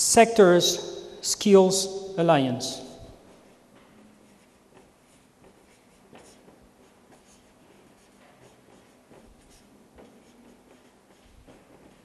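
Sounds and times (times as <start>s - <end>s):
marker pen writing on whiteboard: 2.8s - 12.0s.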